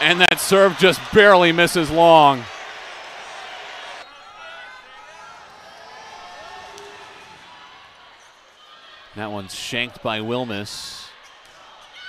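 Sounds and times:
crowd voices chattering: 0.0 - 12.0.

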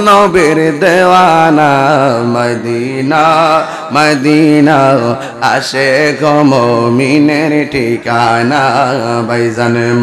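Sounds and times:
man singing devotional song: 0.0 - 10.0.

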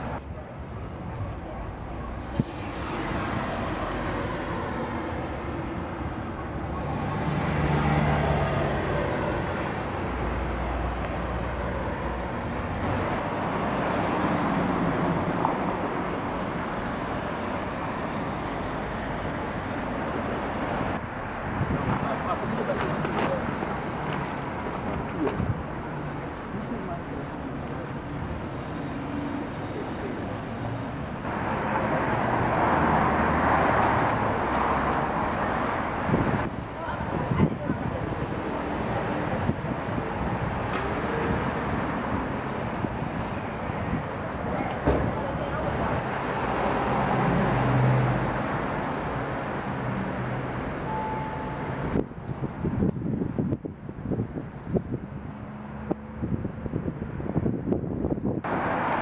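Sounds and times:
cars driving past: 2.1 - 37.4, 38.0 - 52.2, 58.4 - 59.0.

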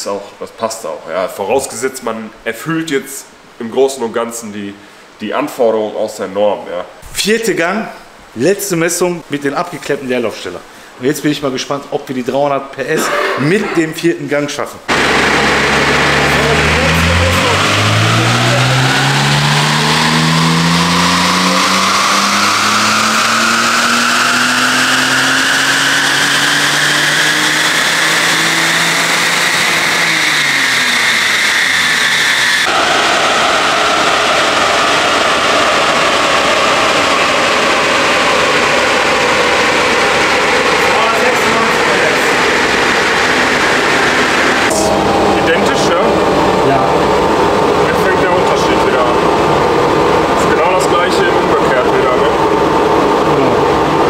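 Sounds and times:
steady rushing noise: 14.9 - 24.3, 26.0 - 54.0
car engine revving on dyno: 14.9 - 54.0.

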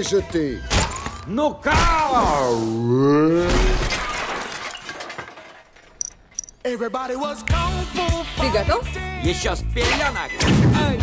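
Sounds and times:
debris shattering and clattering: 3.5 - 6.5.

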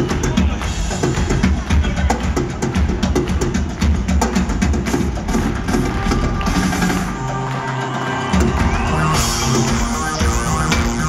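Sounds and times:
live band playing: 0.0 - 11.0
drum hits: 8.7 - 11.0.

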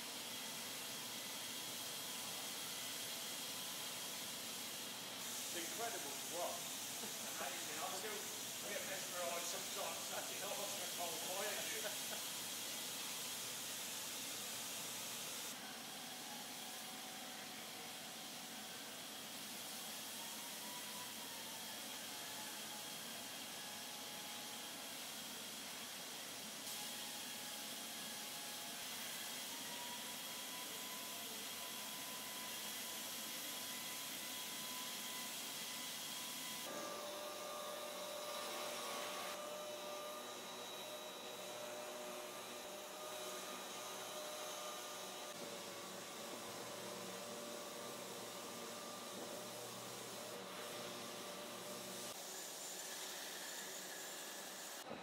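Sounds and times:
factory hissing ambience: 0.0 - 55.0.

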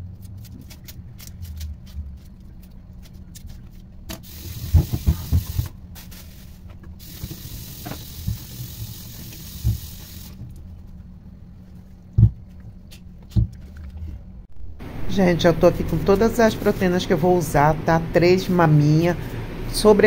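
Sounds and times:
steady hiss: 4.2 - 10.4.

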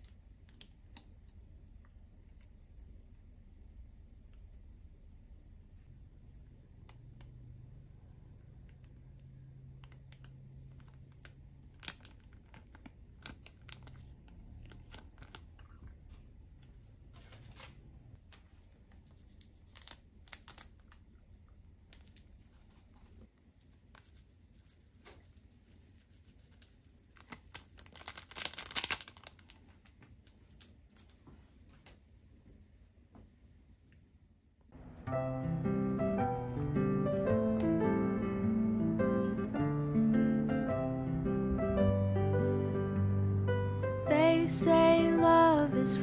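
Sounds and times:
sachets crinkling and tearing: 9.8 - 15.9, 19.2 - 21.1, 26.6 - 31.2.

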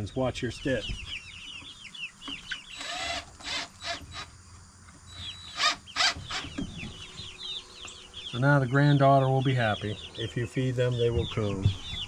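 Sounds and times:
chickens clucking: 0.0 - 12.0.

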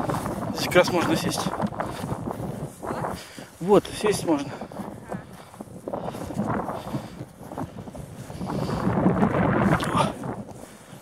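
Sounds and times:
footsteps through dense shrubs: 0.0 - 11.0
wind on microphone: 0.0 - 11.0.

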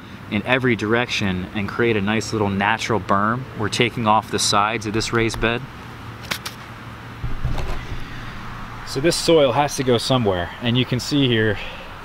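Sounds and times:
steady low hum: 0.0 - 12.0
camera handling bumps and rubbing: 6.2 - 8.1.

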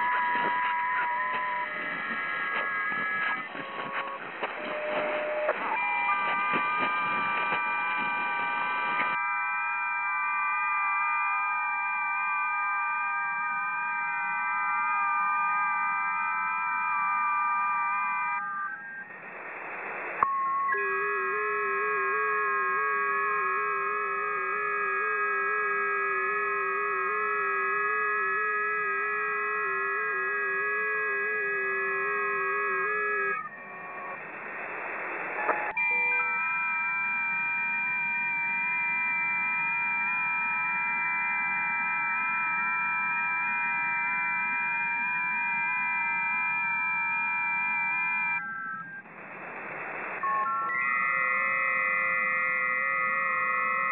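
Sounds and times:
electric guitar drone: 20.4 - 33.4.

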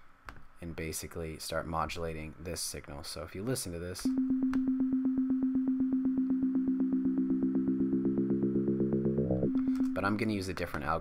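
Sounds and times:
buzzing synthesizer note pulsing: 4.1 - 10.2.

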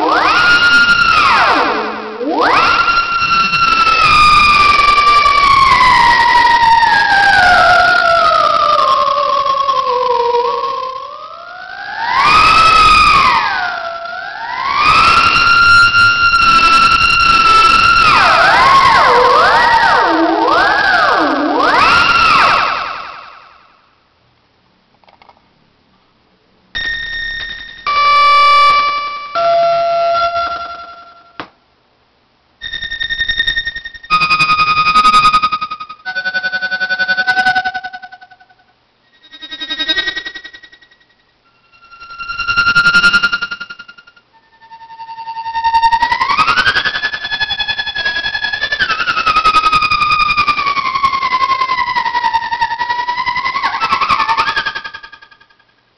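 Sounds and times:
held electronic notes: 0.0 - 22.8, 26.8 - 31.4, 32.6 - 38.4, 39.1 - 55.3
electronic theremin tone swooping: 0.0 - 23.7, 26.8 - 31.4, 32.6 - 55.5.

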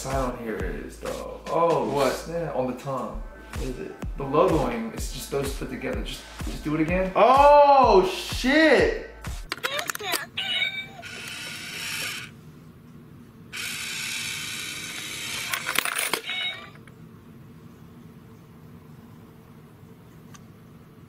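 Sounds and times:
small motor whirring: 10.0 - 12.3, 13.5 - 16.8.

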